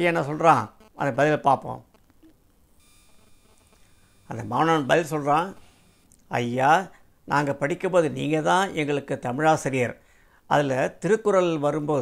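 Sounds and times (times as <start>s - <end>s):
faint high whine: 0.0s - 7.4s.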